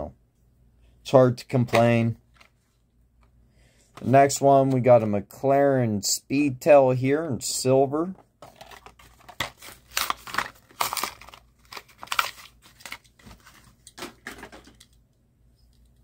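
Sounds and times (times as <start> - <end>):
plastic packaging crinkling and tearing: 8.5 - 14.0.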